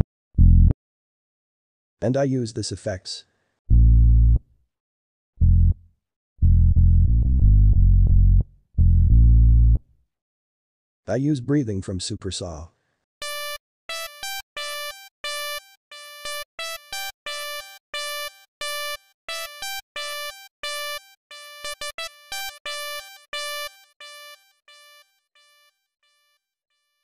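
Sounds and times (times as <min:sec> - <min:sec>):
synth lead melody: 0:13.2 - 0:25.0.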